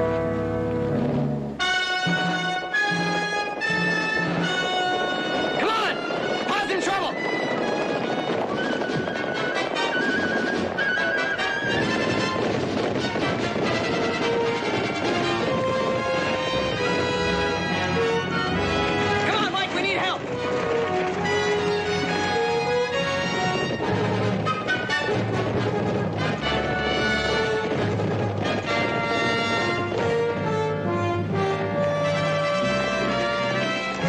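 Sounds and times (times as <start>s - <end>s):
horses galloping: 0.0s - 34.0s
orchestral western score: 0.0s - 34.0s
horses whinnying: 8.7s - 11.7s.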